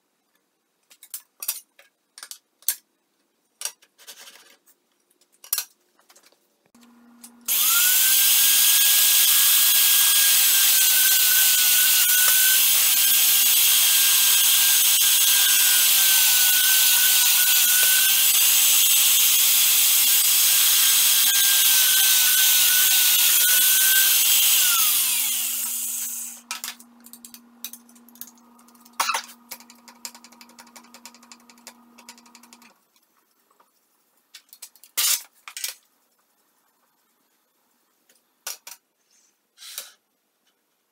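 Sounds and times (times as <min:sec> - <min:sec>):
drill press motor drilling metal: 0:07.5 - 0:26.4.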